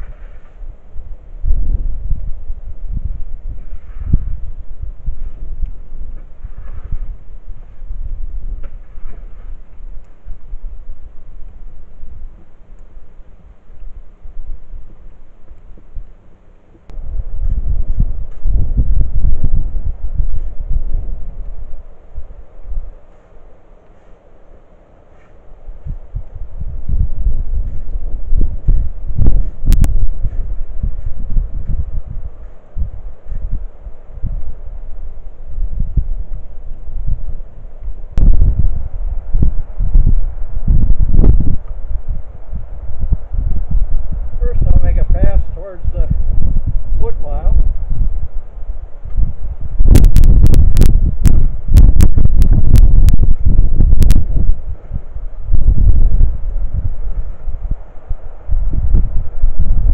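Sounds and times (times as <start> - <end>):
wind buffeting microphone: 0.0 - 59.9.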